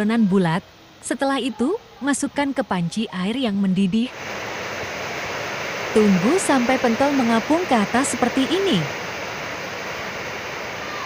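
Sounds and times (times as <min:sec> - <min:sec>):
water boiling and bubbling: 0:00.0 - 0:11.0.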